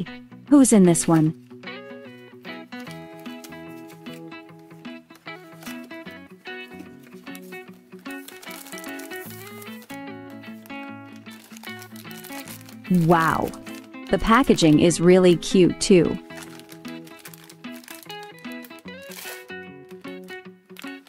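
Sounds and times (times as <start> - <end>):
soft background music: 0.0 - 21.0
foil bag rustling: 2.5 - 21.0
cardboard box rustling: 2.8 - 4.3, 5.2 - 6.0, 6.6 - 10.0, 11.4 - 13.9, 16.2 - 19.4.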